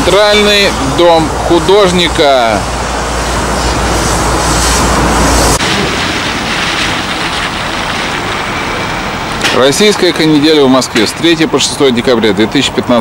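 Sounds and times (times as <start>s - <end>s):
road traffic rushing: 0.0s - 13.0s
low rumble: 0.6s - 11.0s.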